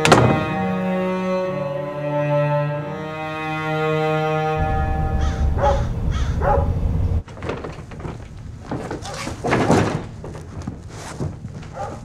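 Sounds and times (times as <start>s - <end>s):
sustained string chord: 0.0s - 7.2s
deep rumble: 4.6s - 7.2s.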